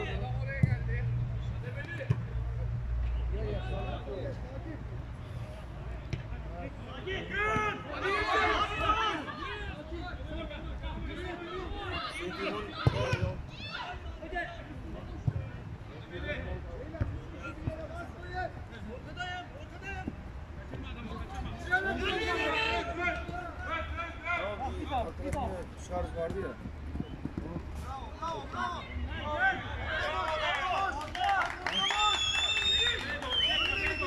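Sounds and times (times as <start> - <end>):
men shouting and talking: 0.0 - 34.0
football being kicked: 12.8 - 13.4.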